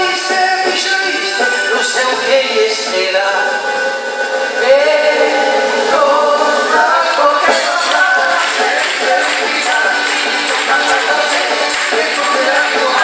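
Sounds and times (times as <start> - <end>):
man singing: 0.0 - 3.9, 4.6 - 13.0
accordion: 0.0 - 13.0
guitars: 0.0 - 13.0
drum kit: 4.8 - 13.0.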